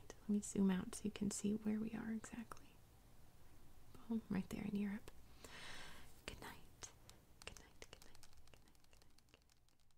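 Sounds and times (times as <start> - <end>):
fingertips tapping on touchscreen: 6.8 - 9.9.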